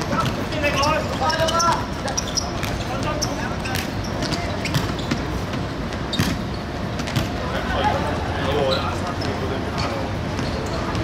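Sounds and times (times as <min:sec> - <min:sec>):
football kicked and bouncing: 0:00.0 - 0:07.4.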